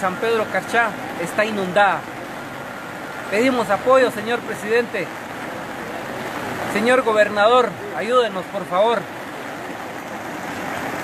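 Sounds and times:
heavy rain falling: 0.0s - 11.0s.

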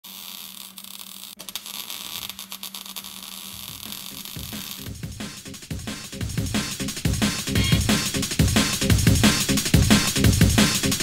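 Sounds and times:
crackling static: 0.0s - 5.0s
drum and bass beat: 3.6s - 11.0s.

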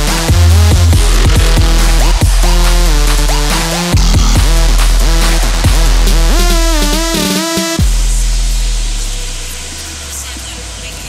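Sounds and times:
deep sub-bass note: 0.0s - 10.5s.

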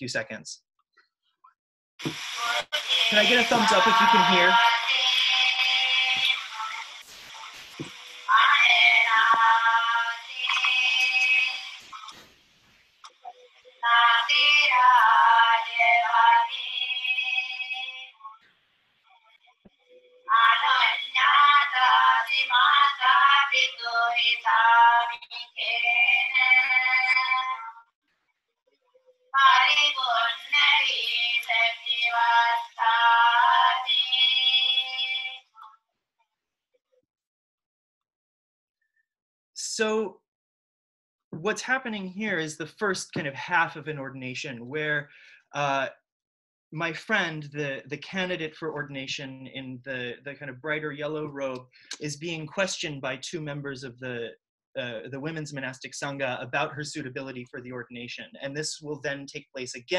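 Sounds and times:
women chanting: 2.4s - 6.9s, 8.3s - 12.1s, 13.8s - 18.0s, 20.3s - 27.6s, 29.4s - 35.4s.

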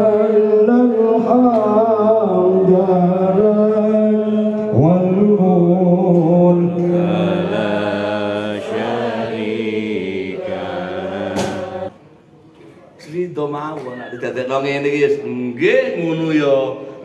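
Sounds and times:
man chanting into microphone: 0.0s - 8.8s.

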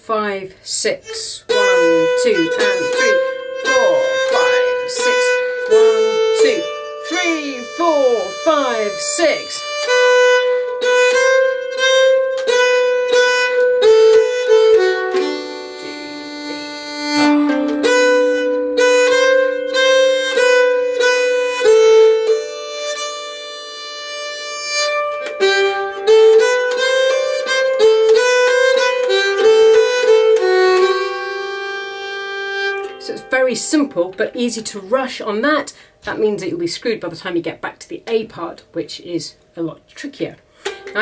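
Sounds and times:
keyed fiddle melody: 0.8s - 36.6s, 40.6s - 41.0s.

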